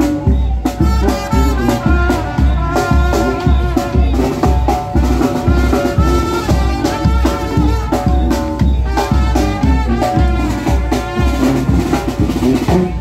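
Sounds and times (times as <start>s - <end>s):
drum and cymbal beats: 0.0s - 13.0s
sousaphone bass line: 0.0s - 13.0s
trumpets playing: 0.0s - 13.0s.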